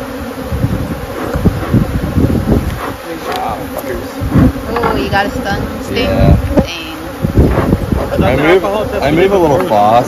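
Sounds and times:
honeybees buzzing: 0:00.0 - 0:10.0
low thumps and bumps: 0:00.5 - 0:09.8.

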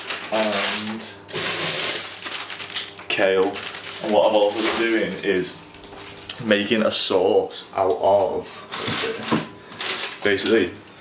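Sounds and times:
plastic bag crinkling: 0:00.0 - 0:06.7, 0:08.0 - 0:10.7.

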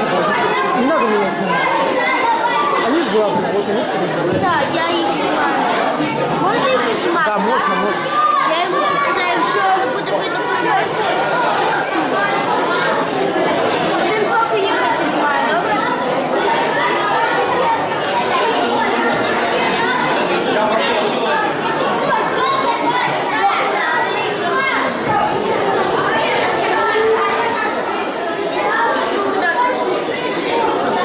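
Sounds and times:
crowd chatter in a large hall: 0:00.0 - 0:31.0.

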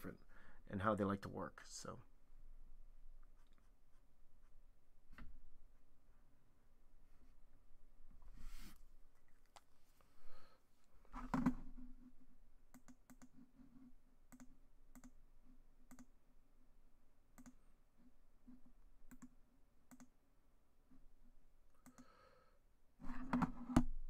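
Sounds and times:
computer clicks: 0:12.7 - 0:13.3, 0:14.3 - 0:15.2, 0:15.9 - 0:16.1, 0:17.4 - 0:17.6, 0:19.1 - 0:20.1.

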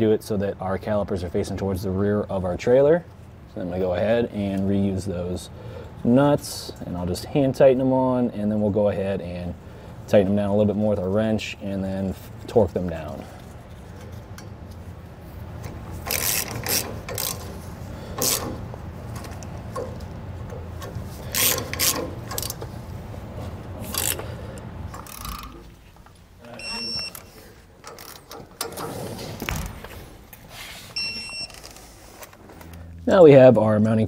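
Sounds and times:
socket ratchet clicking: 0:15.6 - 0:22.7, 0:23.8 - 0:25.6
short high beeps: 0:26.5 - 0:27.3, 0:31.0 - 0:31.5.

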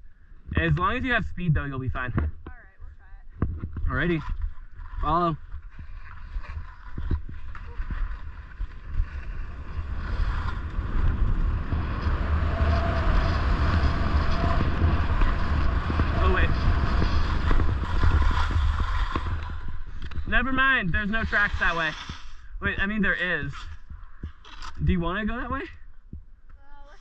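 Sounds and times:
wind buffeting microphone: 0:03.3 - 0:20.4
snowboard sliding on snow: 0:05.0 - 0:22.3.

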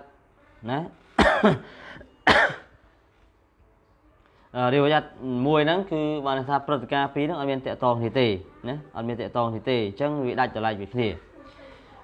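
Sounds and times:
man coughing: 0:01.2 - 0:02.7.

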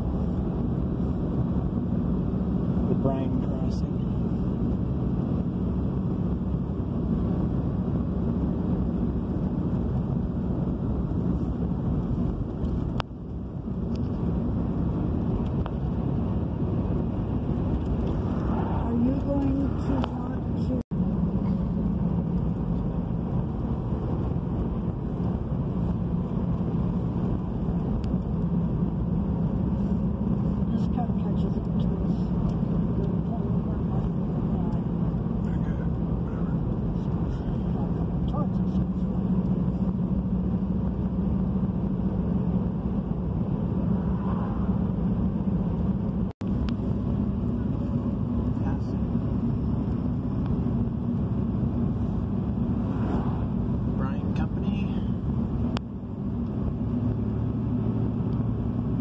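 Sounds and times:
car road and engine drone: 0:00.0 - 0:59.0.

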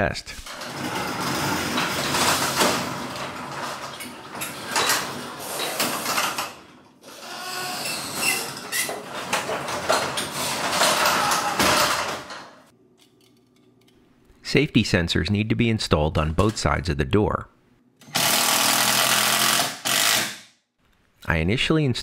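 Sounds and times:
garage door rollers rumbling: 0:00.4 - 0:12.7.

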